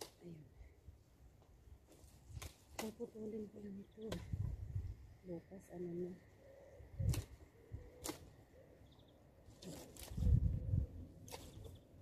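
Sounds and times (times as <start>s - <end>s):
branches snapping: 0.0s - 0.4s, 1.4s - 3.3s, 7.0s - 8.4s, 9.6s - 10.4s, 11.2s - 11.9s
dry twigs cracking and rustling: 1.4s - 3.3s, 7.0s - 8.4s, 9.6s - 10.6s, 11.2s - 11.9s.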